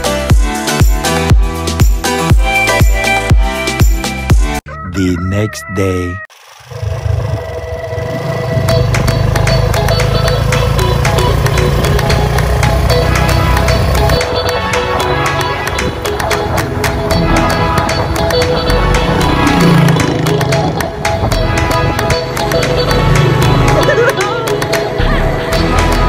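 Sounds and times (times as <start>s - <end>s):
background music with strong bass: 0.0s - 4.6s, 8.1s - 26.0s.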